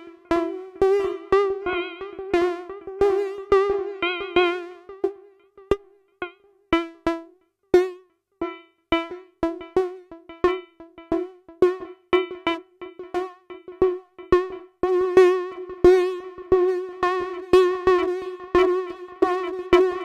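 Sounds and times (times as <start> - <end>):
plucked synth notes: 0.0 - 20.0.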